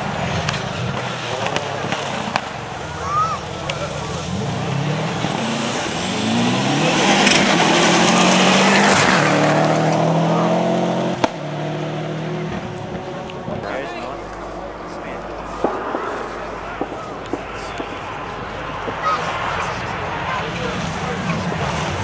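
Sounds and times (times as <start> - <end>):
rally car passing at speed: 0.0 - 22.0
tyres on gravel: 0.0 - 22.0.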